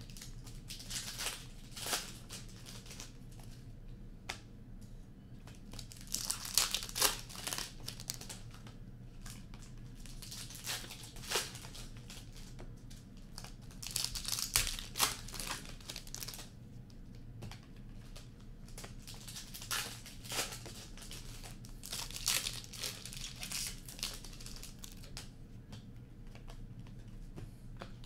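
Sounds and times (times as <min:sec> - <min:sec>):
wrappers crinkling and tearing: 0:00.0 - 0:03.6, 0:05.7 - 0:08.6, 0:09.2 - 0:16.5, 0:18.0 - 0:25.3.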